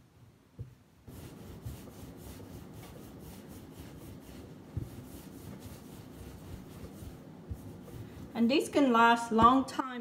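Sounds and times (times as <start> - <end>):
dough rubbing on countertop: 0.6 - 8.9.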